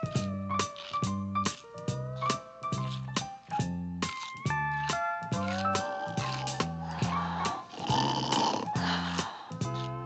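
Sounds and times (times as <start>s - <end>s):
orchestral cartoon music: 0.0s - 10.0s
cartoon snore: 6.1s - 8.8s.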